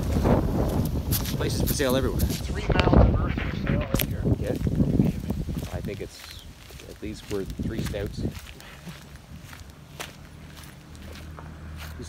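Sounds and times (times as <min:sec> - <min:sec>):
footsteps on gravel: 0:00.0 - 0:12.0
low engine hum: 0:07.0 - 0:12.0.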